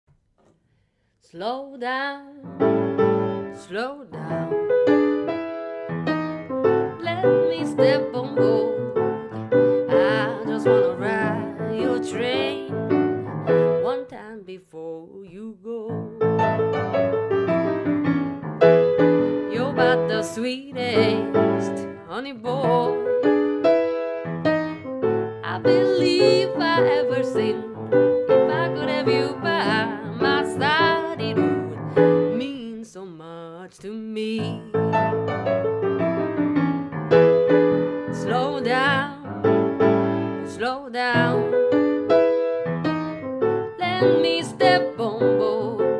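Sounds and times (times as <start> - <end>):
grand piano blues fill: 2.4 - 14.2, 15.9 - 32.6, 34.4 - 45.9
person singing: 7.0 - 12.9, 13.5 - 16.4, 19.3 - 23.1, 25.4 - 34.9, 38.1 - 39.4, 43.8 - 45.9.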